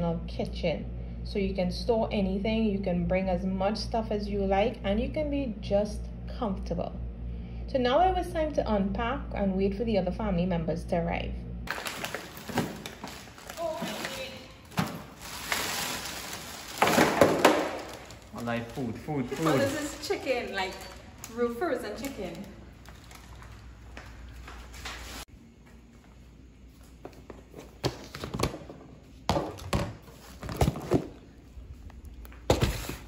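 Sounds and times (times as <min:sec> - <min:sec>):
plastic bags rustling: 0:11.7 - 0:25.2.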